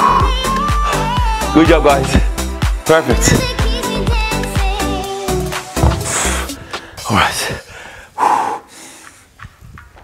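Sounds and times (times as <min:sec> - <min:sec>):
faint knock: 0:05.8 - 0:06.2
man breathing out heavily: 0:05.9 - 0:09.3.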